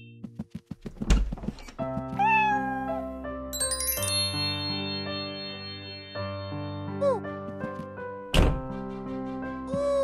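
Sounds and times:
door thud and knocking clatter: 0.9s - 1.7s, 8.3s - 8.8s
light background music: 1.2s - 10.0s
kitten meowing: 2.2s - 3.0s.

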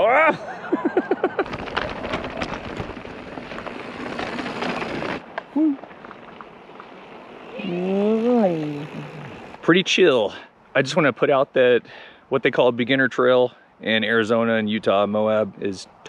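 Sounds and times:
bike clicks and rattles: 1.2s - 7.6s
bike tyres crunching on stones: 1.3s - 8.5s.

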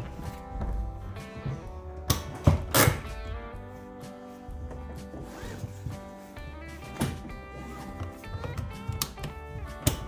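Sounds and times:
background music: 0.0s - 10.0s
seatbelt pulled from retractor: 5.2s - 5.8s.

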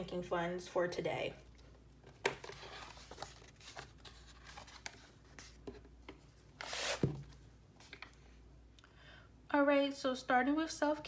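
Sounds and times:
pages turning: 2.3s - 5.8s, 6.6s - 8.1s
paper rustling: 2.4s - 5.8s.

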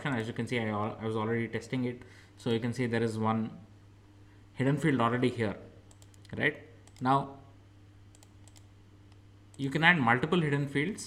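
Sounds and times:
low steady hum: 0.0s - 11.0s
faint computer mouse clicks: 5.9s - 7.1s, 8.1s - 9.6s.

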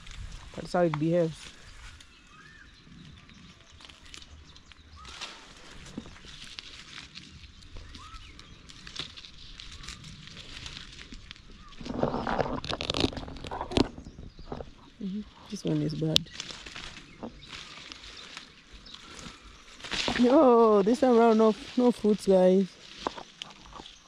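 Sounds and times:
close rustling: 0.0s - 24.0s
faint bird chirps: 1.4s - 6.6s, 7.3s - 10.2s.

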